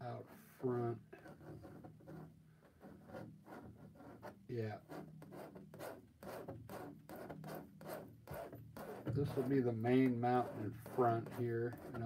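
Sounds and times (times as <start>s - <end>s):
palette knife scraping canvas: 1.2s - 12.0s.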